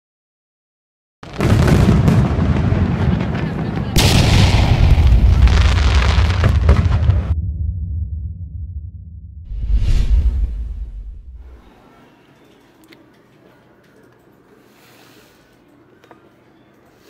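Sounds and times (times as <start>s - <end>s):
fireworks bursting and crackling: 1.2s - 7.4s.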